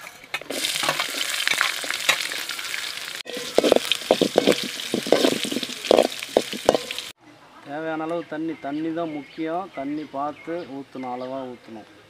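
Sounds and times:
steel spoon scraping a pan: 0.0s - 7.1s
onion sizzling in hot oil: 0.4s - 7.2s.

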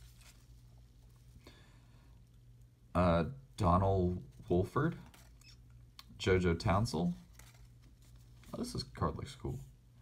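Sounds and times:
low steady hum: 0.0s - 10.0s
trading cards rustling: 4.4s - 5.6s, 7.0s - 8.9s.

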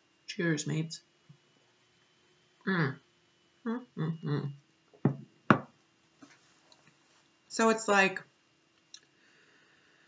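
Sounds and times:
glass set down on table: 5.0s - 5.7s.

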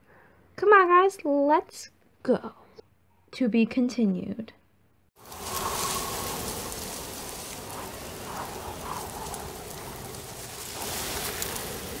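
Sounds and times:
rain-like hiss: 5.2s - 12.0s.

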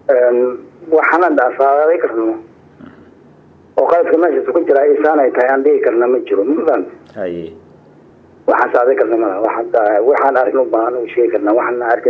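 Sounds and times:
man speaking: 0.1s - 3.2s, 3.8s - 7.7s.

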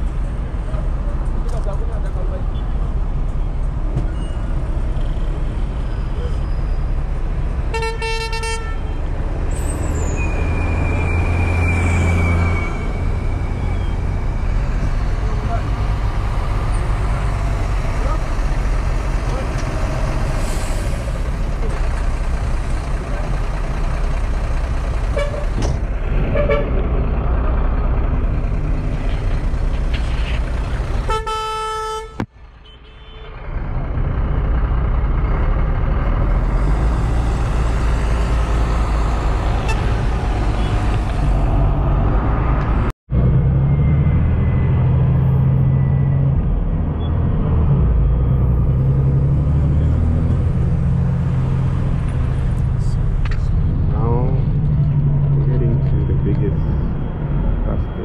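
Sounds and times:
engine and road rumble: 0.0s - 58.0s
vehicle horn toots: 7.7s - 8.9s, 25.2s - 25.4s, 31.1s - 33.3s.

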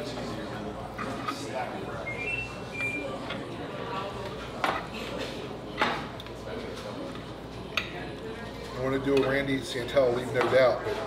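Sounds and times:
murmur of voices: 0.0s - 11.0s
cutlery scraping on metal platters: 0.9s - 1.6s.

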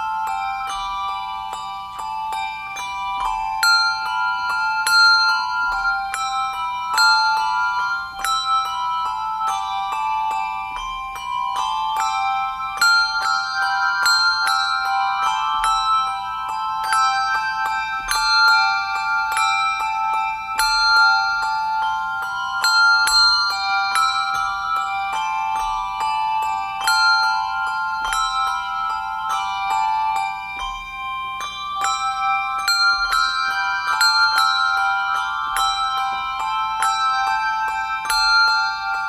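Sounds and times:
handbell choir playing: 0.0s - 39.0s.

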